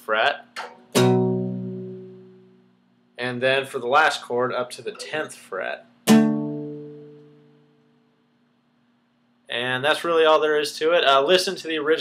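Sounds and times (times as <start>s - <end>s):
acoustic guitar power chord: 0.6s - 2.7s, 6.0s - 7.8s.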